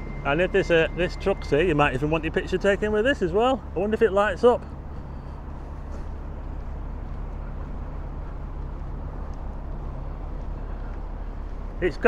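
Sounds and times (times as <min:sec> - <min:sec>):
large engine idling: 0:00.0 - 0:12.0.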